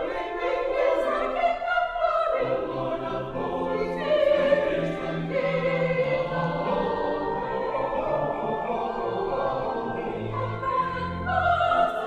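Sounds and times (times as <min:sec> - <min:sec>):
church choir singing: 0:00.0 - 0:12.0
pipe organ: 0:02.4 - 0:12.0.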